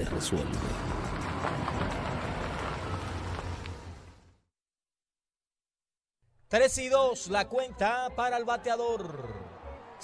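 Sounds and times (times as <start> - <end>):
truck road noise: 0.0 - 4.5.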